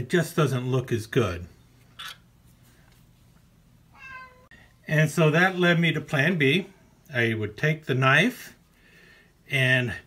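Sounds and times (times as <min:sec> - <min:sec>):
cat meowing: 0:03.9 - 0:04.6.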